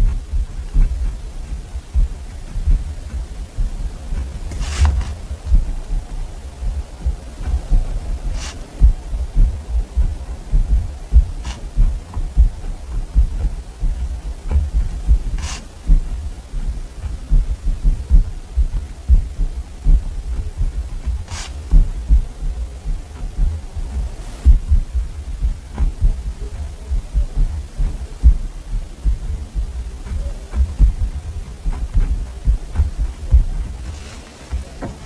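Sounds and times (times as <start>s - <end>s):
paper swishes: 0.1s - 10.0s, 11.4s - 12.4s, 15.4s - 17.3s, 20.4s - 21.7s, 30.0s - 35.0s.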